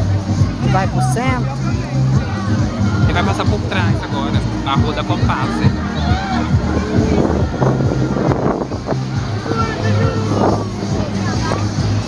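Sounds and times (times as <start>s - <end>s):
music playing: 0.0s - 12.0s
passengers' voices: 0.0s - 12.0s.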